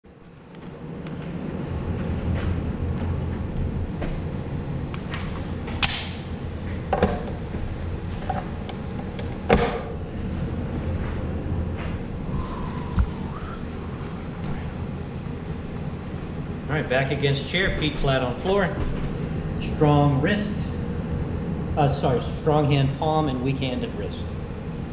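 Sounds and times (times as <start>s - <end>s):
room noise hum: 0.0s - 24.9s.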